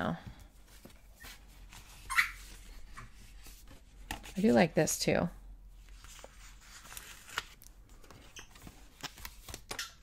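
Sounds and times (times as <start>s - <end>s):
squeaky toy squeak: 2.1s - 2.4s
sticker book handling: 6.0s - 10.0s.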